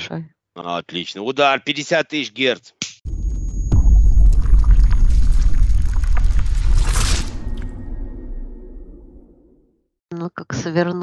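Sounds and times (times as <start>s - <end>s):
sharp crackles: 3.1s - 9.5s
deep dense rumble: 3.1s - 9.6s.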